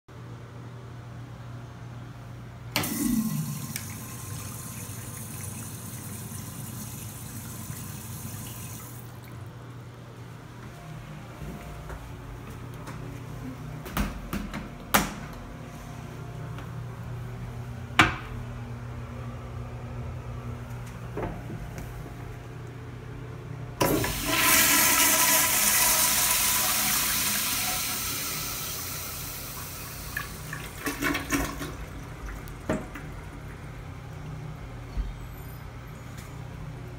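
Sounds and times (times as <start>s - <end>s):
urinal flushing: 2.7s - 9.9s, 23.8s - 34.8s.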